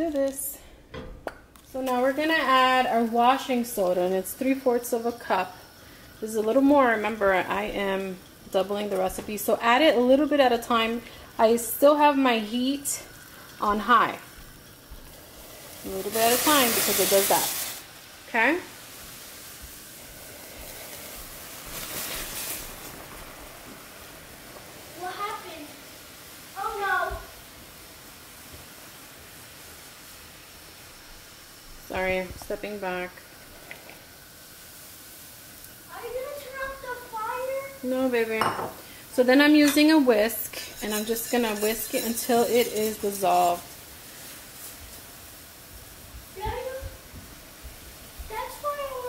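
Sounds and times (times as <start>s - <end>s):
boiling water hissing and fizzing: 0.0s - 49.0s.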